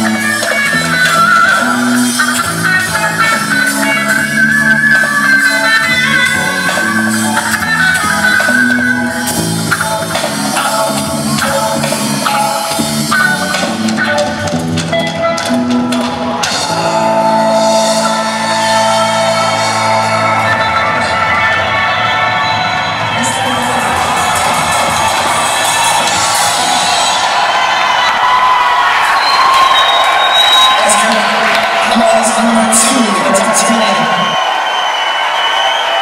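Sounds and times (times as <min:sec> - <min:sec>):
live band holding a chord: 0:00.0 - 0:36.0
audience cheering and whooping: 0:15.4 - 0:36.0.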